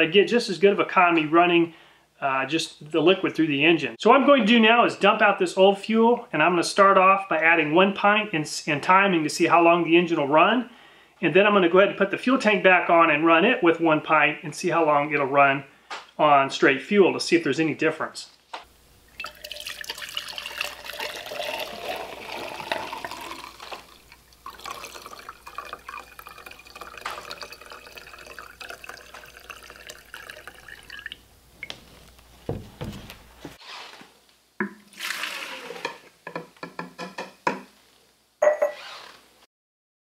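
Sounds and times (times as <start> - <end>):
liquid pouring into glass jar: 19.0 - 31.3, 34.9 - 35.6.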